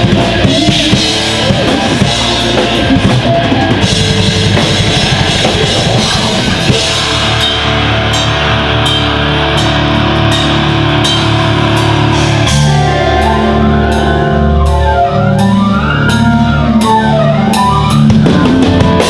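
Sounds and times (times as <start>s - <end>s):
fast drum hits: 0.0s - 12.9s
live rock band playing: 0.0s - 19.0s.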